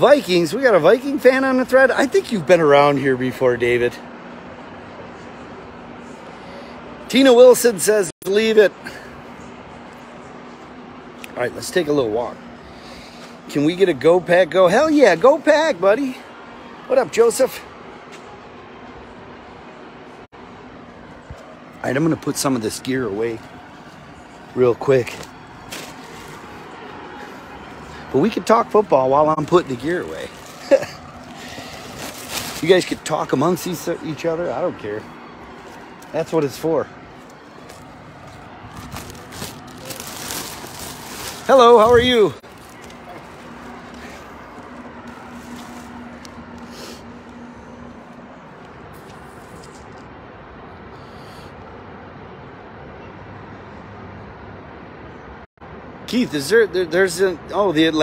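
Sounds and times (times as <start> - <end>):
outdoor background noise: 0.0 - 58.0
traffic noise: 0.0 - 58.0
handling rustle: 23.4 - 27.3, 28.6 - 34.0, 35.4 - 50.1.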